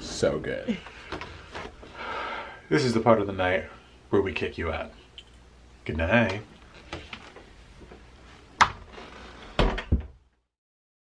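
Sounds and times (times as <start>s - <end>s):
wooden door shutting knocks: 9.6s - 10.2s.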